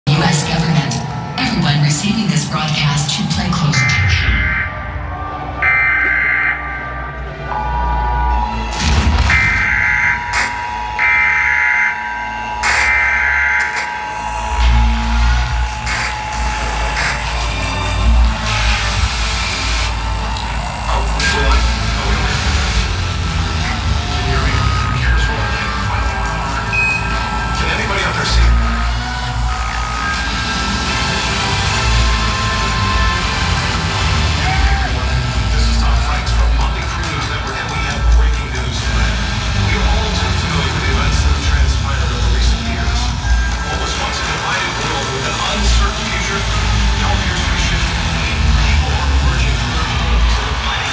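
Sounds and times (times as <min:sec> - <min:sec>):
deep bass rumble: 0:00.0 - 0:12.7, 0:13.9 - 0:50.9
alarm-like beeps: 0:00.1 - 0:32.9.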